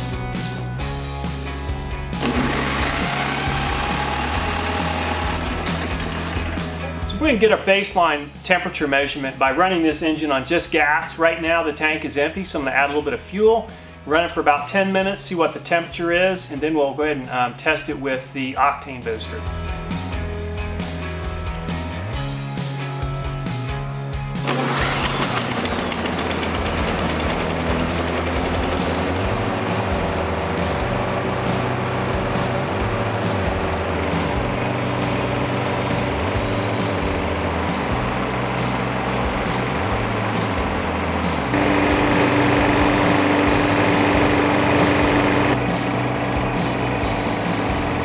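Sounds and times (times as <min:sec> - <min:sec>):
background music: 0:00.0 - 0:48.0
lawn mower engine running: 0:02.1 - 0:07.2, 0:24.4 - 0:48.0.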